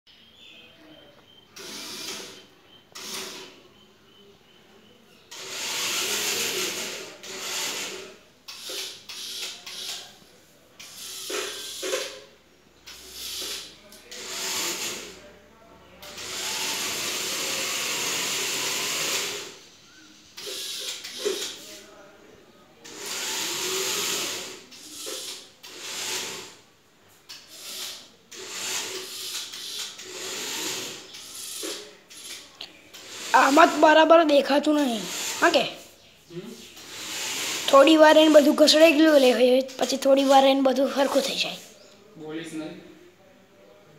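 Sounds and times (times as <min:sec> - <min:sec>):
small gear motors whirring: 0:01.6 - 0:03.5, 0:05.3 - 0:10.0, 0:10.8 - 0:12.0, 0:16.1 - 0:19.6, 0:22.9 - 0:26.6, 0:27.3 - 0:35.8, 0:36.8 - 0:40.0.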